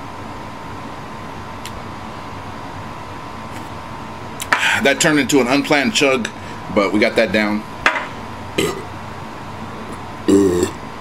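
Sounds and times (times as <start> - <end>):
man burping: 8.6 - 8.9, 10.2 - 10.8.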